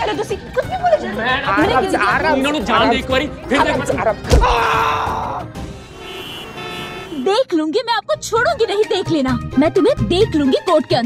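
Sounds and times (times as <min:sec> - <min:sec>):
busy road traffic: 0:05.2 - 0:07.5
car horns tooting: 0:05.6 - 0:07.4.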